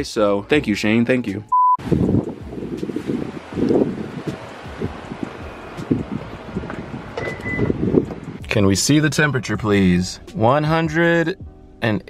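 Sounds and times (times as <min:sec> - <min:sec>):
wind buffeting microphone: 0:01.8 - 0:08.5
car door opening: 0:05.4 - 0:08.4.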